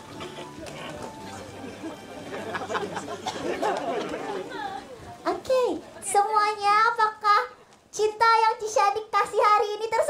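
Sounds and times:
many voices chattering: 0:00.0 - 0:10.0.

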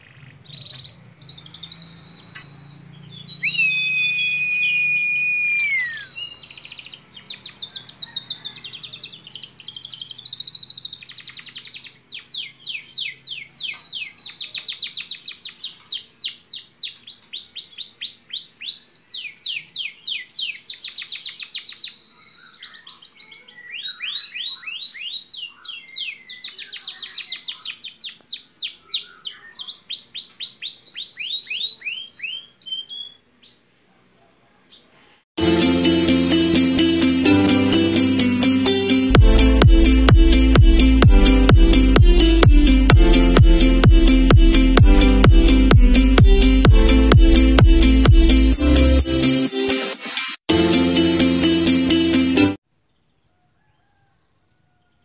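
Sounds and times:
canary singing: 0:00.0 - 0:33.6.

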